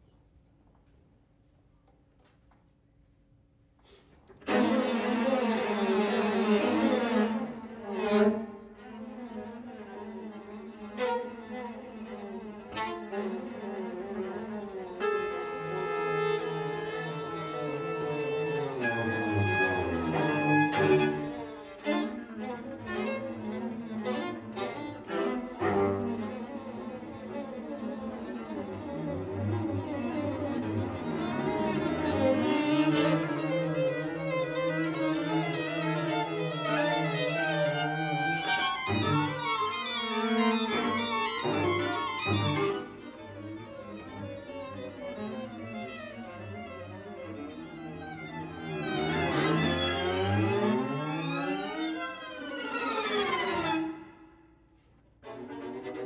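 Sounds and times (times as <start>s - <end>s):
string quartet playing: 4.3s - 54.4s, 55.0s - 56.0s.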